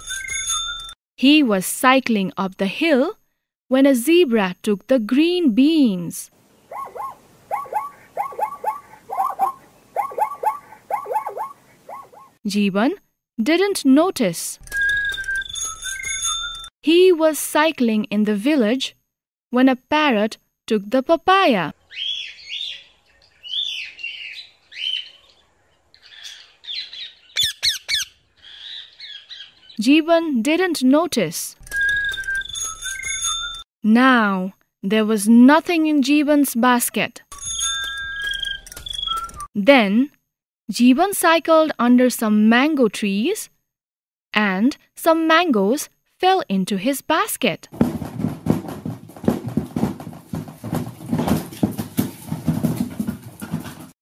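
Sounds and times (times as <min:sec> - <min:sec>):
parrot squawking: 0:06.6 - 0:12.4, 0:26.1 - 0:29.5.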